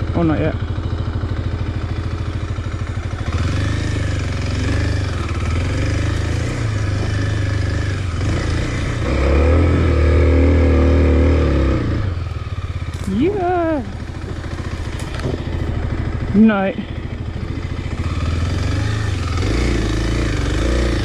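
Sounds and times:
dirt bike engine: 0.0s - 21.0s.

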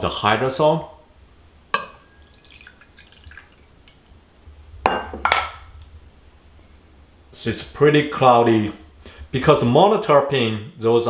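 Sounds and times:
liquid trickling into glass: 1.8s - 3.7s.

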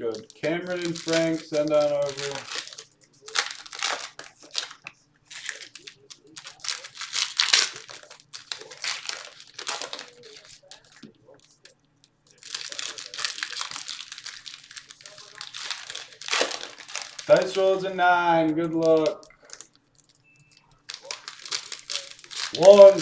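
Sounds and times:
foil wrappers crinkling and tearing: 0.0s - 23.0s.

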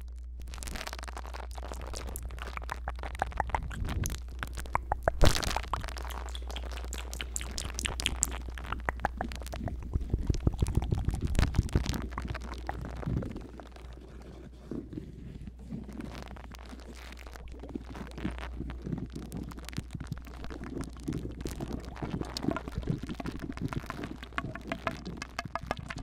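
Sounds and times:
brush scratching on microphone: 6.0s - 25.7s.

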